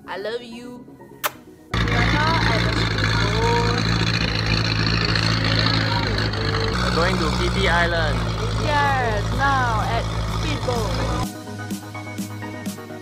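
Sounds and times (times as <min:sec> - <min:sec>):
speedboat engine running: 0:01.7 - 0:11.3
faint voices: 0:01.8 - 0:11.2.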